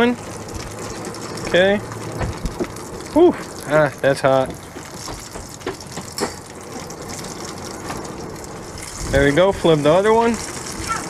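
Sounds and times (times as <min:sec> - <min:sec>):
fish sizzling in frying oil: 0:00.0 - 0:11.0.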